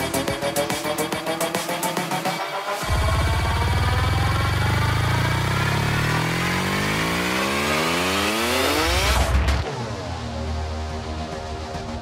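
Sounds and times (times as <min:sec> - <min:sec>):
synthesizer riser: 0:00.0 - 0:12.0
bass drone: 0:02.8 - 0:12.0.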